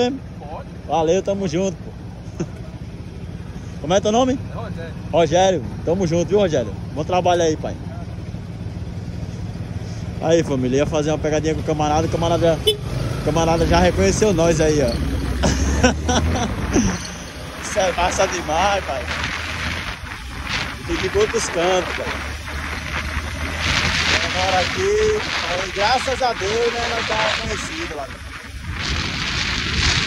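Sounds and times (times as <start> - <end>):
motorcycle engine idling: 0.0 - 13.4
motorcycle engine drone: 0.0 - 30.0
wind rushing over microphone: 16.3 - 30.0.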